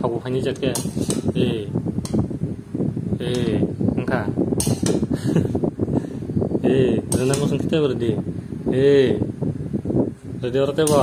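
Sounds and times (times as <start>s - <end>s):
steel spoon clinking on metal: 0.6s - 1.3s, 4.6s - 5.0s, 7.1s - 7.6s, 10.8s - 11.0s.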